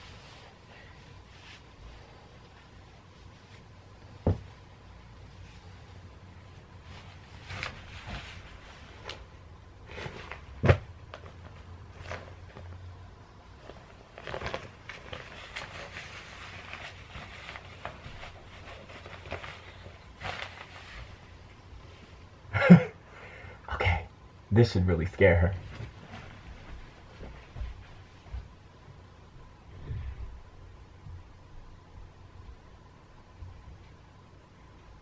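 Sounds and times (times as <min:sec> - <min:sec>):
rustling of costume fabric: 0:00.0 - 0:22.4, 0:25.5 - 0:30.8.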